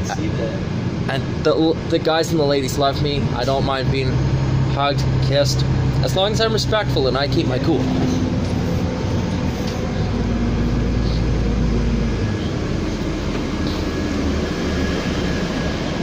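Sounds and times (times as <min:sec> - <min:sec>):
bus engine and road rumble: 0:00.0 - 0:16.0.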